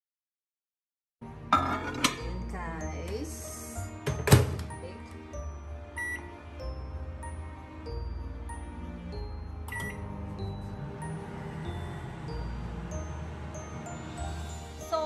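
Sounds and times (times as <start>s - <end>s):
background music: 1.2s - 15.0s
microwave door shutting: 4.1s - 4.7s
keypad beeps: 6.0s - 6.2s, 9.7s - 10.0s.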